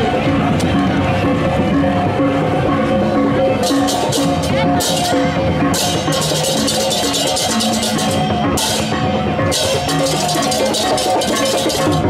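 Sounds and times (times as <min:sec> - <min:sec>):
hand cymbals and drums: 0:00.0 - 0:12.0.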